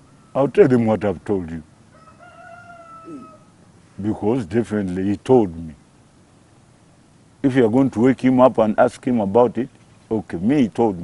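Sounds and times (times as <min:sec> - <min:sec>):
faint rooster crowing: 0:01.9 - 0:03.7.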